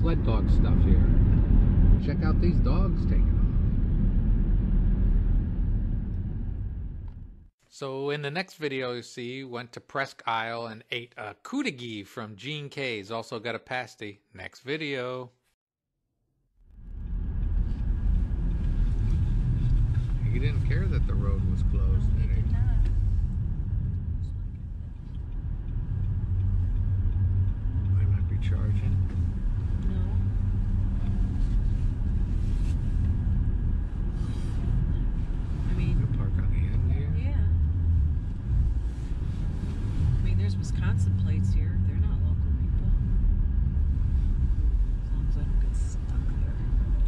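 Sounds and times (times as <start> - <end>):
car engine and tyres rumbling: 0.0 - 7.5, 16.7 - 47.0.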